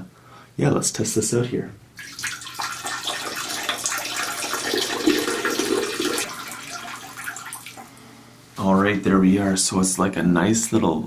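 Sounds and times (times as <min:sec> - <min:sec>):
running water splashing: 0:02.0 - 0:08.0.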